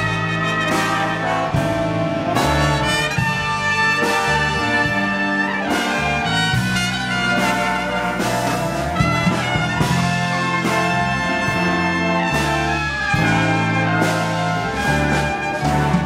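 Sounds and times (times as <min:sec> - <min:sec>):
jazz big band playing: 0:00.0 - 0:16.0.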